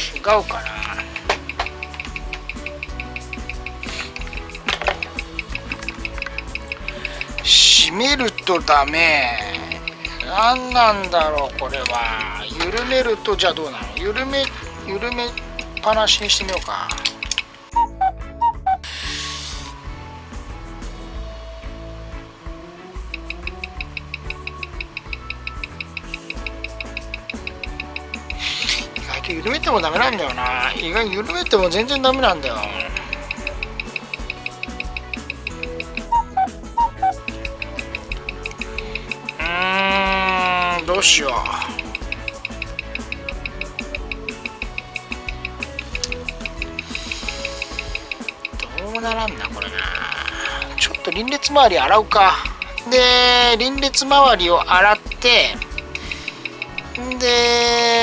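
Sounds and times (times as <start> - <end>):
watch ticking: 0.0 - 18.8, 21.6 - 58.0
background music: 0.0 - 58.0
pitched blips: 0.7 - 12.4, 17.7 - 18.8, 23.0 - 28.5, 29.4 - 57.8.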